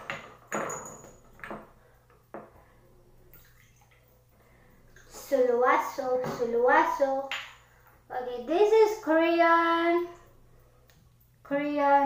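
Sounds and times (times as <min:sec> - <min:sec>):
glass bottle knocking: 0:00.1 - 0:01.7
bathwater splashing: 0:03.2 - 0:05.6.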